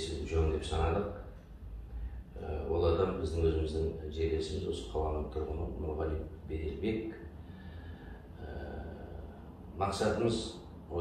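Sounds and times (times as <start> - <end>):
man speaking: 0.0 - 1.4, 2.4 - 7.3, 8.4 - 11.0
low room hum: 0.0 - 11.0
sharp intake of breath: 7.3 - 9.5.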